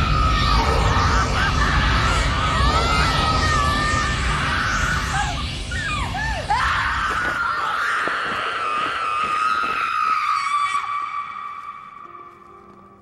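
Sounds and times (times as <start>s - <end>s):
woman screaming: 0.0s - 11.6s.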